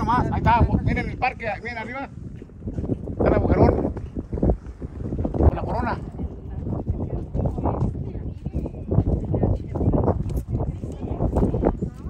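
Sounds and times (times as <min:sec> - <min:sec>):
wind buffeting microphone: 0:00.0 - 0:12.0
indistinct voices talking: 0:03.1 - 0:12.0.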